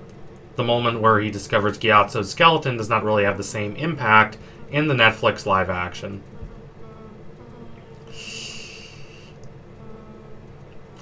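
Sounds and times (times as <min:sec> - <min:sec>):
faint room hum: 0:00.0 - 0:11.0
man breathing: 0:04.4 - 0:04.7, 0:07.9 - 0:09.4.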